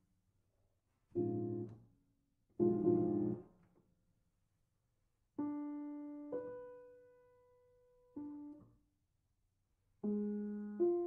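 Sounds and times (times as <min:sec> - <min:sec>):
soft grand piano notes: 0:01.2 - 0:01.8, 0:02.6 - 0:03.4.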